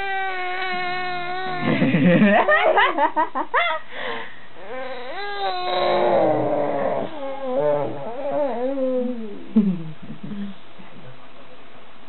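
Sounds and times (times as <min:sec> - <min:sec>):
baby whining: 0:00.0 - 0:01.8, 0:04.6 - 0:09.4.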